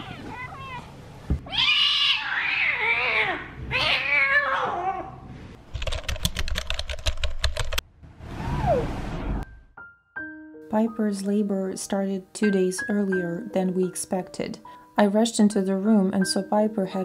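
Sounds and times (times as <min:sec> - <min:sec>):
kitten meowing: 0:01.5 - 0:05.0.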